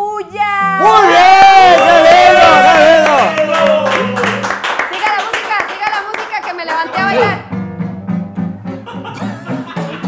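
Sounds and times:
background music: 0.0s - 4.9s, 6.6s - 10.0s
hands clapping: 1.7s - 7.4s.

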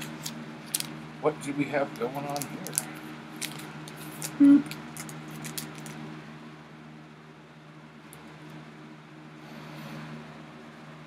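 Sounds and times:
plastic bag crinkling: 0.0s - 1.0s, 1.9s - 6.0s
steady low hum: 0.0s - 11.0s.

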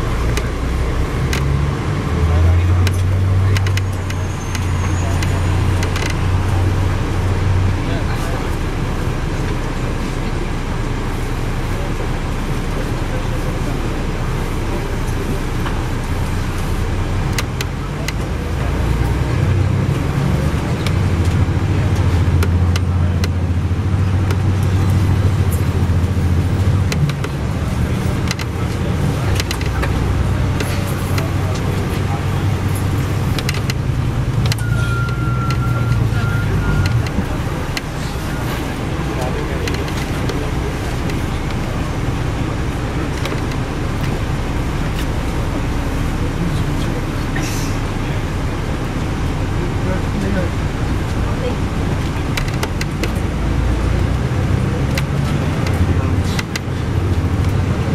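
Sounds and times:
bus engine drone: 0.0s - 57.9s.

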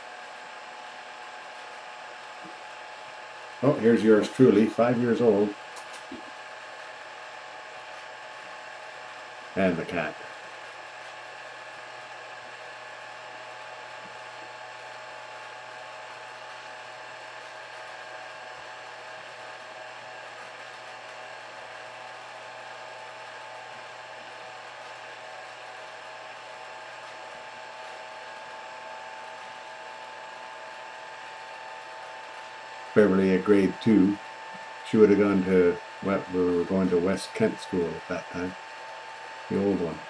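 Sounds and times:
machine hum: 0.0s - 40.0s.

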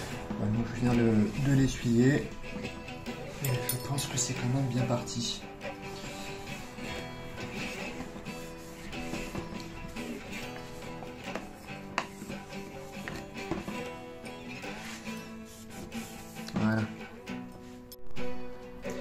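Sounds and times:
acoustic guitar music: 0.0s - 19.0s.

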